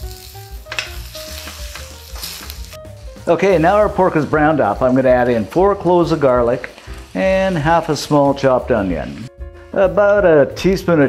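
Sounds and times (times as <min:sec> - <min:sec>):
meat sizzling in oil: 0:00.0 - 0:09.8.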